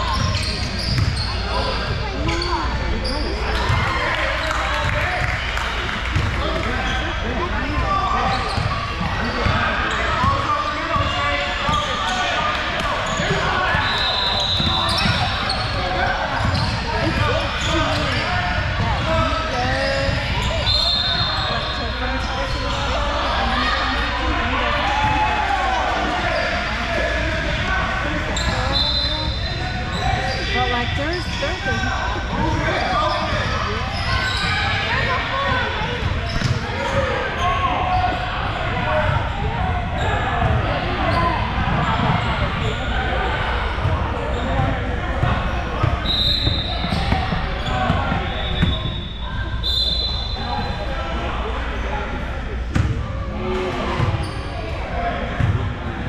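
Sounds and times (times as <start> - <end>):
hubbub of indistinct voices: 0.0 - 56.0.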